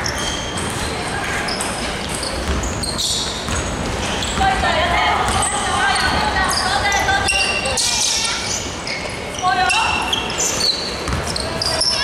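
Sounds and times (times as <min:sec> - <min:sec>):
sneaker squeaks: 0:00.0 - 0:12.0
basketball bouncing on wooden court: 0:02.3 - 0:06.6, 0:11.0 - 0:11.7.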